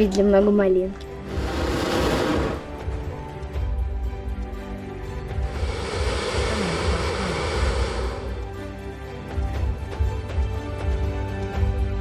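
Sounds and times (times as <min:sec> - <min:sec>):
propane burner blast: 0:01.2 - 0:02.8, 0:05.4 - 0:08.7.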